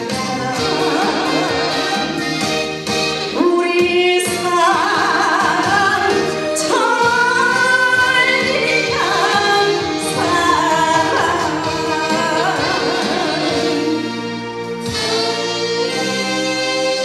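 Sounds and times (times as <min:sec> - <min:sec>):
backing track music: 0:00.0 - 0:17.0
woman singing: 0:03.3 - 0:14.2.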